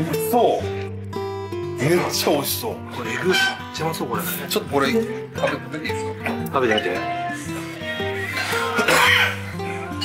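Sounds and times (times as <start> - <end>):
background music of held notes: 0.0 - 10.0
person breathy cough: 8.5 - 9.4.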